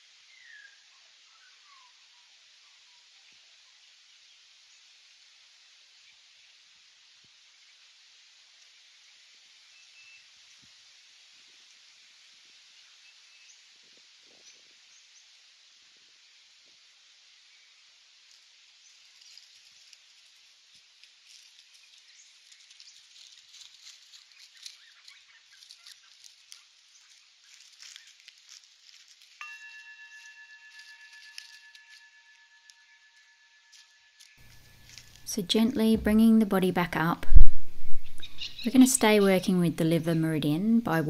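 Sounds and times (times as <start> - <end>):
steady high hiss: 0.0 - 25.0, 25.6 - 41.0
dry leaves crackling and rustling: 18.2 - 33.0, 33.7 - 35.3
steady high-pitched tone: 29.4 - 41.0.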